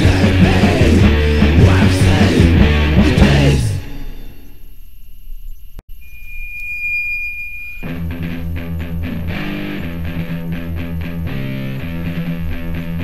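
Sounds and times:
distorted electric guitar and bass: 0.0s - 13.0s
high steady whine: 0.0s - 13.0s.

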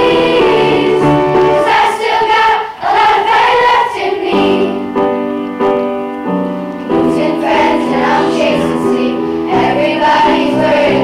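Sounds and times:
children's choir singing: 0.0s - 5.3s, 6.9s - 11.0s
piano chords: 0.0s - 11.0s.

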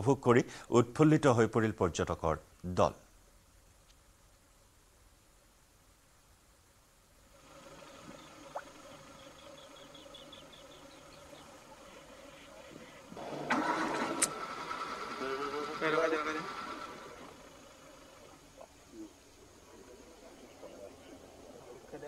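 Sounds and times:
jeep engines running: 7.4s - 19.0s
people's voices: 18.2s - 22.0s.

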